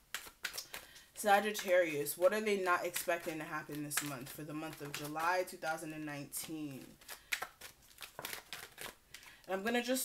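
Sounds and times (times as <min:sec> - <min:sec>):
cards snapping and sliding: 0:00.0 - 0:01.0.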